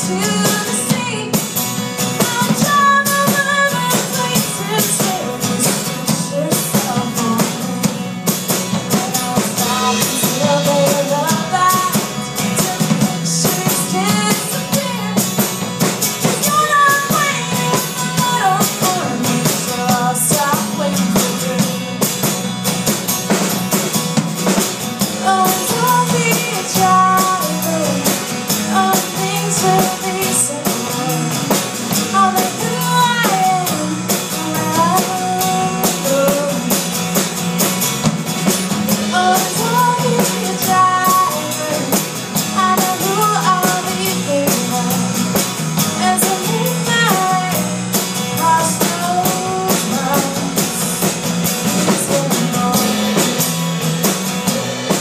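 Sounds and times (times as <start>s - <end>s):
drum kit: 0.0s - 55.0s
electric bass: 0.0s - 55.0s
strummed acoustic guitar: 0.0s - 55.0s
person singing: 2.2s - 8.1s, 8.8s - 15.4s, 16.2s - 22.1s, 25.1s - 36.8s, 39.0s - 45.3s, 45.9s - 53.6s.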